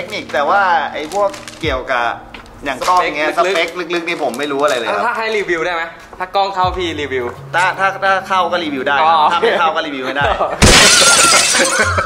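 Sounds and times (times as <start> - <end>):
man talking: 0.0 - 10.5.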